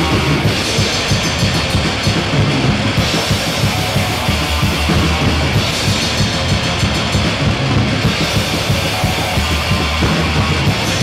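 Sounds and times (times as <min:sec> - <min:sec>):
death metal music: 0:00.0 - 0:11.0.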